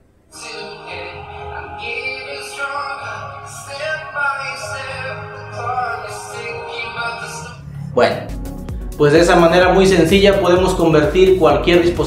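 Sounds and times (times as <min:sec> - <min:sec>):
electronic dance music with vocals: 0:00.3 - 0:12.0.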